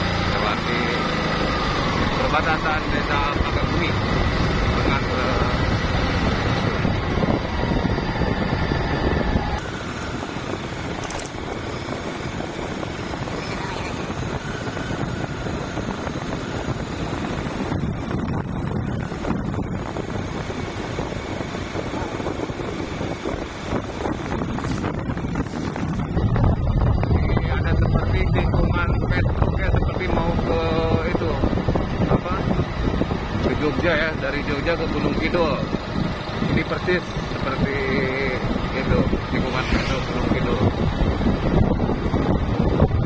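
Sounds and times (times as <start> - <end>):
wind rushing over microphone: 0.0 - 43.0.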